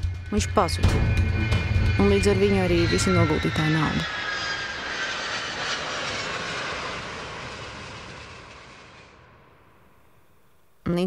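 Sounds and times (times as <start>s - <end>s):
jet airliner flying past: 0.0s - 10.6s.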